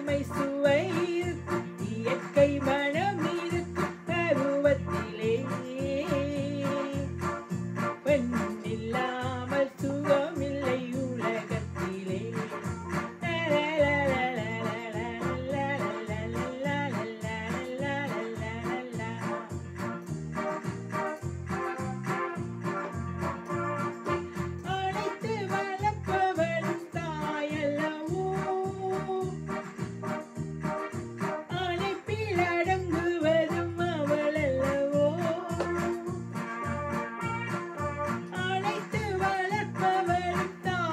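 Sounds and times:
electronic keyboard love song: 0.0 - 40.9
electronic keyboard music: 11.8 - 13.3, 18.8 - 24.3, 29.2 - 32.0.

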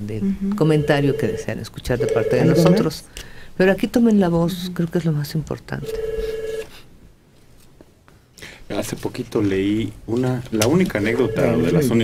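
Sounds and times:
electronic telephone tone: 0.6 - 2.8, 5.8 - 6.7, 11.1 - 12.0.

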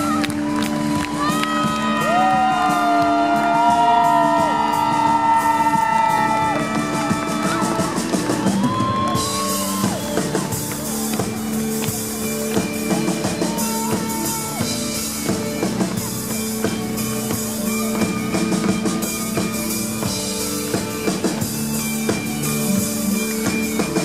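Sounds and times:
crowd cheering faintly: 0.0 - 24.0.

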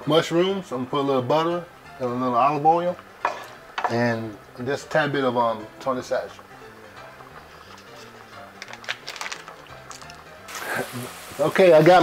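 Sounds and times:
soft background music: 0.0 - 12.0
mushrooms sizzling in a frying pan: 0.1 - 12.0.

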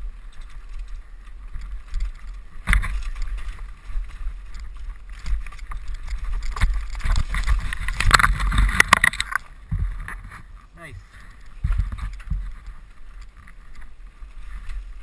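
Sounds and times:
mountain bike rattling and clattering: 0.0 - 15.0.

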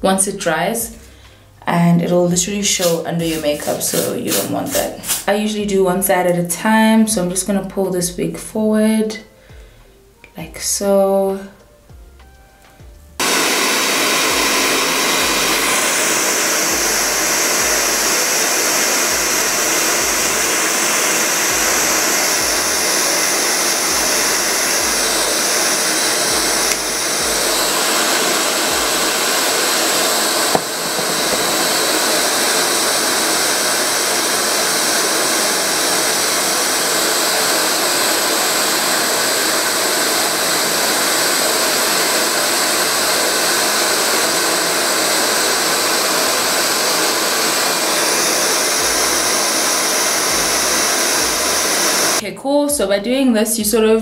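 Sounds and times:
hair dryer blowing: 2.6 - 5.5, 13.2 - 52.2.

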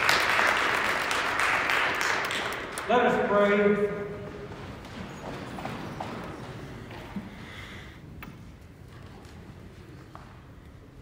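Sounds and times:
steady room noise: 0.0 - 11.0.

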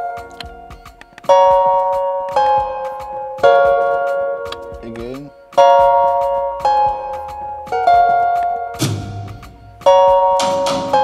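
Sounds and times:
bell-like synth chords: 0.0 - 11.0.

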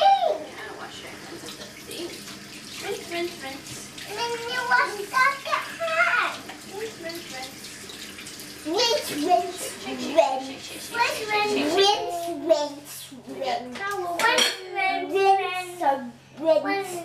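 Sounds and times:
sink tap running: 1.1 - 12.7.

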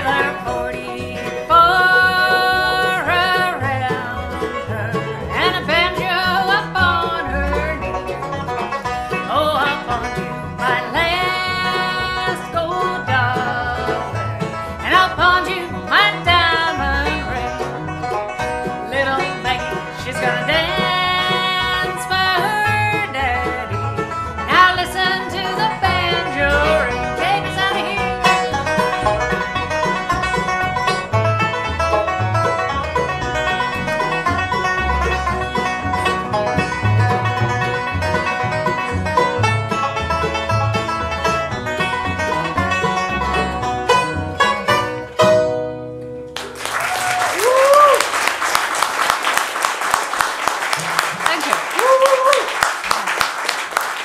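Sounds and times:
sung vocals: 0.0 - 7.8, 24.5 - 28.2
acoustic bluegrass band playing: 0.0 - 54.0
audience applause: 46.3 - 54.0.

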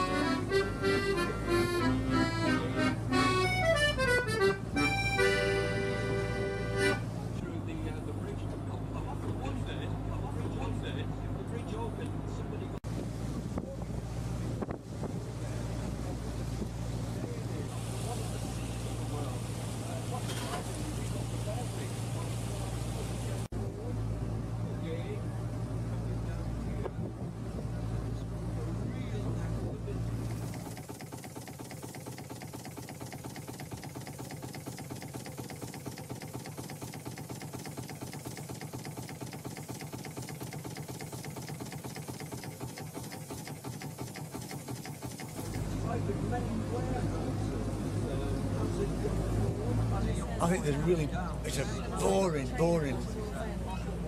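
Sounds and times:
boat engine drone: 0.0 - 54.0.

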